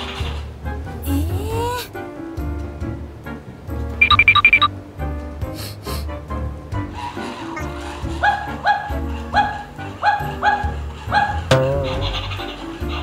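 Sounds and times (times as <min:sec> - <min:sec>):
cheerful background music: 0:00.0 - 0:13.0
dog barking: 0:07.2 - 0:11.5.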